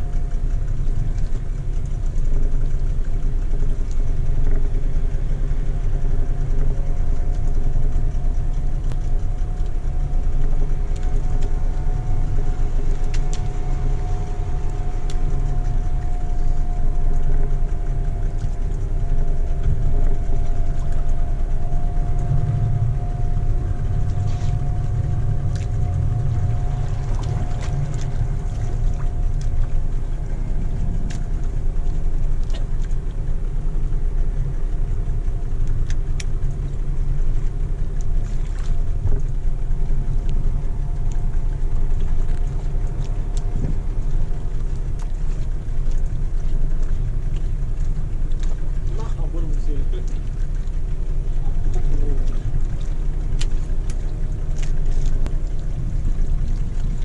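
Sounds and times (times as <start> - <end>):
small boat engine running: 0.0 - 57.0
faint clicks: 6.4 - 22.3, 35.2 - 39.4, 40.2 - 57.0.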